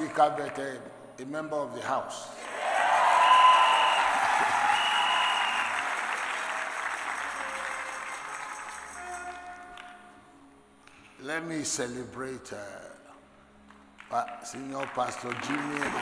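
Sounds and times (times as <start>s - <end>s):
crowd applauding and cheering: 2.4s - 10.1s, 14.0s - 16.0s.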